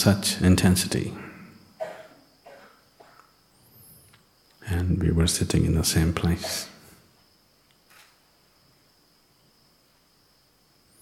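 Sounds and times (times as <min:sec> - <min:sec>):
high-pitched insect trill: 0:00.2 - 0:11.0.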